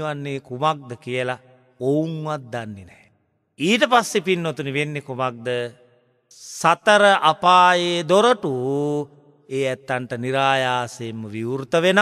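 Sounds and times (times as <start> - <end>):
monk chanting: 0.0 - 12.0.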